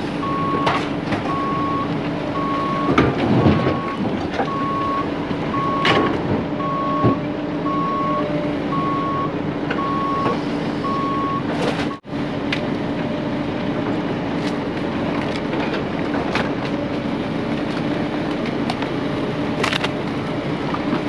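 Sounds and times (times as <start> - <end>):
diesel engine running: 0.0 - 21.0
backup alarm beeping: 0.2 - 0.7, 1.3 - 3.0, 3.6 - 6.0, 6.6 - 12.0.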